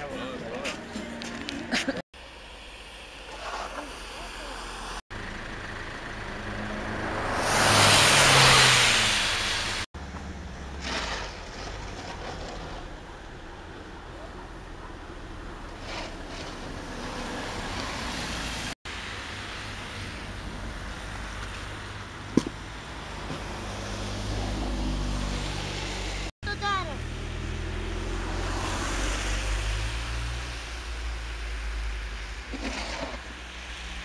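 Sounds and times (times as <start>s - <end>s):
car traffic rumble and hiss: 0.0s - 34.0s.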